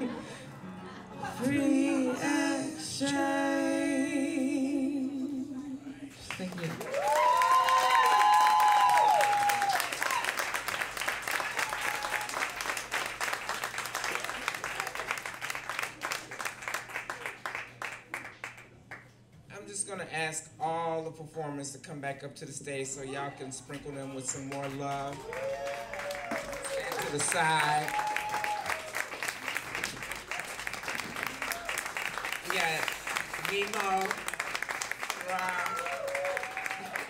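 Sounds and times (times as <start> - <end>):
audience applause: 6.2 - 19.0, 24.0 - 37.0
whoops and cheers: 6.8 - 10.5, 11.4 - 12.6, 25.1 - 29.1, 35.2 - 37.0.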